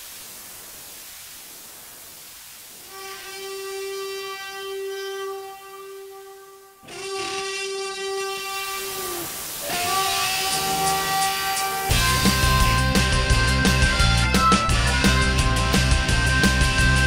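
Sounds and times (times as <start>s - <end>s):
hiss of steam: 0.0s - 14.5s
steam locomotive whistle: 2.8s - 17.0s.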